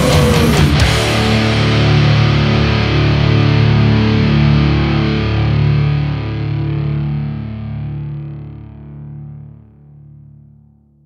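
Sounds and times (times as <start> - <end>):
distorted electric guitar chord ringing: 0.0 - 10.5.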